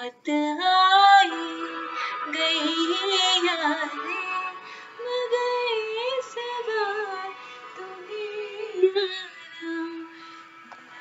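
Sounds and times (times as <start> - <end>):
woman singing: 0.0 - 11.0
short breath: 4.6 - 5.0.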